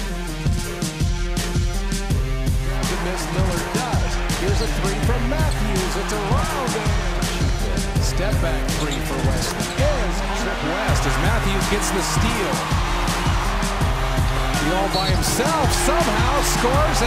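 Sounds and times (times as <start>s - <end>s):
hip-hop instrumental beat: 0.0s - 17.0s
crowd noise: 2.4s - 17.0s.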